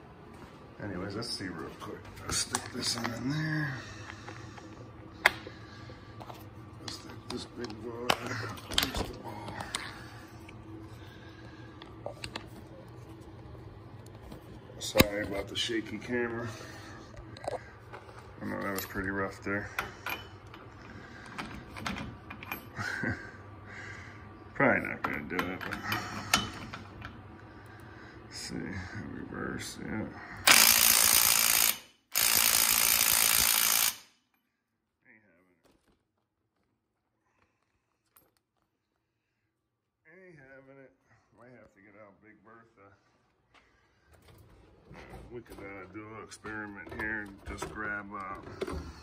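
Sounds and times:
steady low hum: 0:00.0 - 0:49.0
impact wrench hammering on nut: 0:30.5 - 0:34.1.

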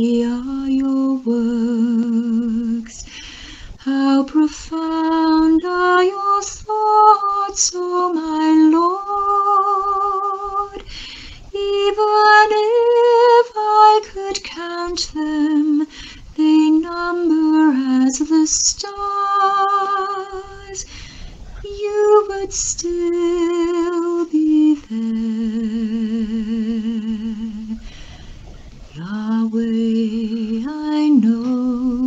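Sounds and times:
woman singing slow song: 0:00.0 - 0:32.0.

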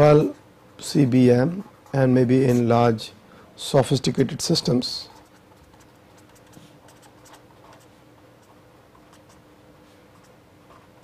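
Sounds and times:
low electrical hum: 0:00.0 - 0:11.0
marker pen scratching on paper: 0:05.0 - 0:09.4.

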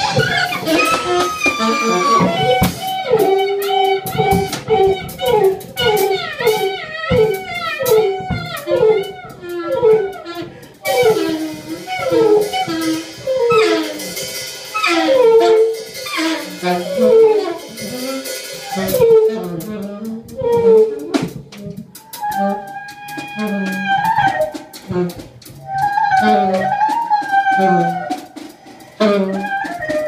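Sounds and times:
daxophone swooping notes: 0:00.0 - 0:30.0
drum kit played lightly: 0:00.0 - 0:30.0.

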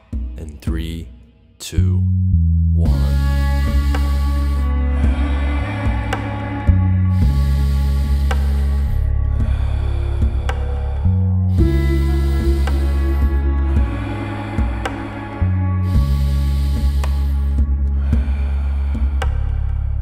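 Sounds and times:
slow rhythmic breathing: 0:00.0 - 0:20.0
calm background music: 0:02.8 - 0:20.0.

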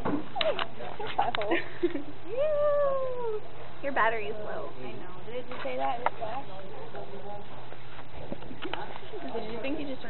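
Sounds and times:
woman whining high-pitched: 0:02.3 - 0:03.4.

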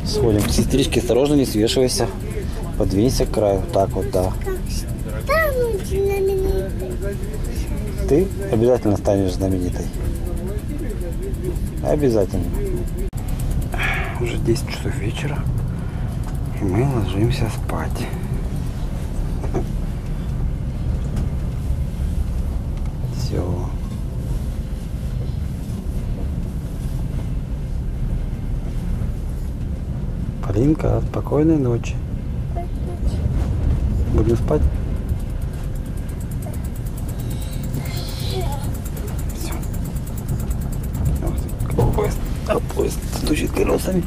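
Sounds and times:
train rumbling: 0:00.0 - 0:44.0.

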